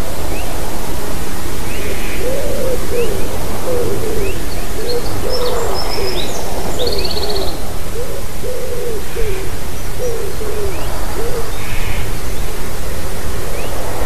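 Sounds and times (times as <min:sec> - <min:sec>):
background hiss: 0:00.0 - 0:14.0
bird calling low notes: 0:01.7 - 0:12.1.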